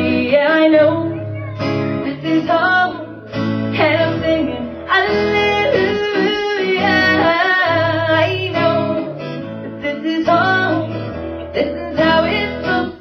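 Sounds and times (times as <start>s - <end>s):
acoustic guitar: 0.0s - 13.0s
woman singing: 0.0s - 13.0s.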